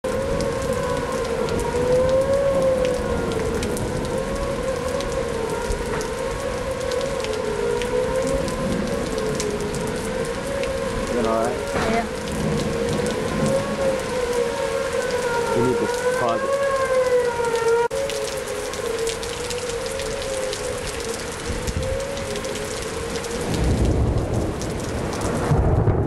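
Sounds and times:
rain falling: 0.0s - 26.0s
warning siren wailing: 0.0s - 26.0s.

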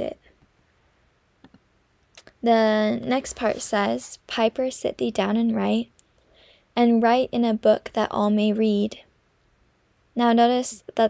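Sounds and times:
woman speaking: 0.0s - 0.2s, 2.2s - 5.9s, 6.8s - 9.1s, 10.2s - 11.0s.

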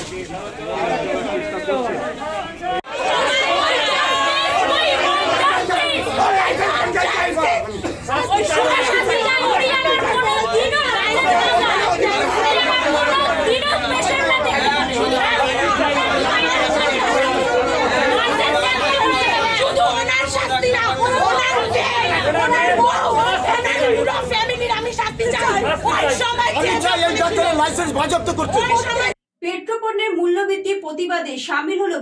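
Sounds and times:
crowd shouting and arguing: 0.0s - 29.2s.

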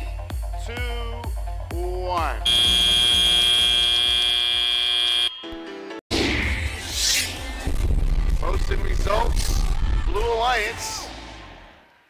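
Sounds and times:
loud electronic buzzer: 2.4s - 5.4s.

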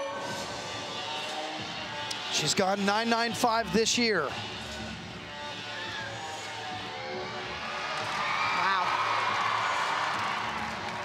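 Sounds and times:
routine music over speakers: 0.0s - 11.0s
crowd cheering and whooping: 7.7s - 11.0s.

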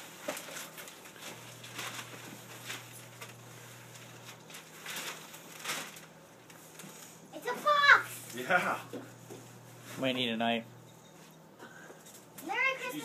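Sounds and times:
wrapping paper rustling: 0.0s - 8.5s.

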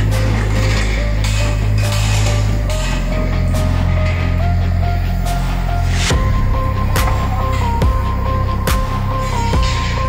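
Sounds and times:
deep bass notes: 0.0s - 10.0s.

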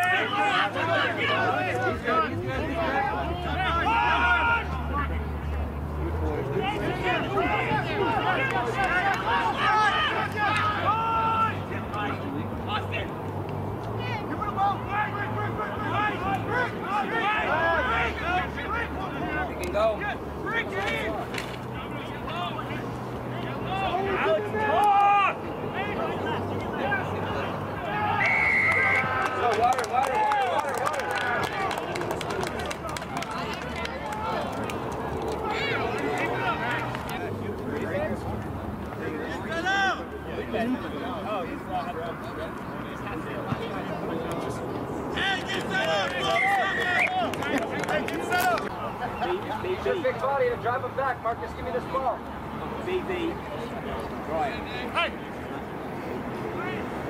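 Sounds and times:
players and spectators shouting: 0.0s - 13.2s, 13.9s - 44.2s, 44.8s - 52.1s.

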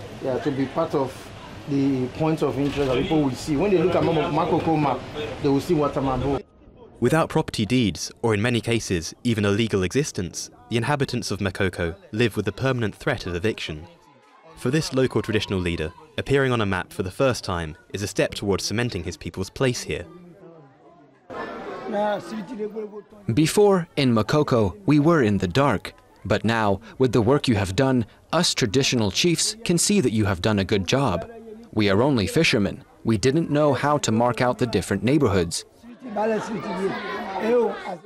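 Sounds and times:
background chatter: 0.0s - 38.0s
man talking: 7.0s - 13.9s, 14.6s - 20.2s, 21.9s - 38.0s.

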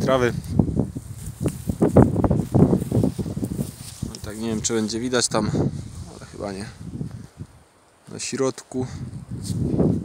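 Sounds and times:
footsteps through dry grass: 0.3s - 8.2s.

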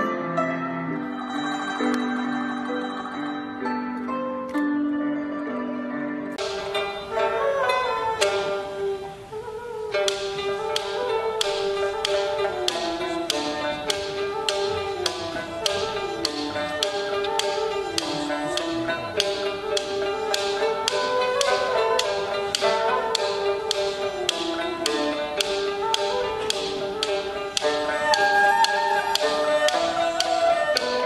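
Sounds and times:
bamboo flute melody: 0.0s - 31.0s
bowed fiddle: 0.0s - 31.0s
plucked lute notes: 0.0s - 31.0s
wooden clappers beating: 6.4s - 8.9s, 9.9s - 31.0s.

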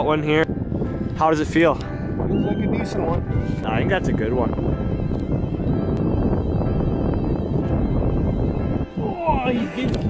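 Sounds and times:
faint background music: 0.0s - 10.0s
wind buffeting microphone: 0.0s - 10.0s.

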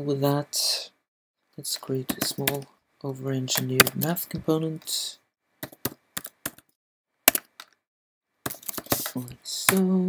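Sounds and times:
computer keyboard typing: 5.6s - 6.7s.

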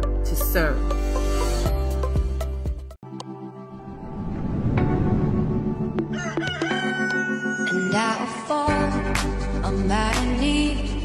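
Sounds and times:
background music: 0.0s - 11.0s
rushing noise: 3.8s - 6.0s
rooster crowing: 6.0s - 8.4s.

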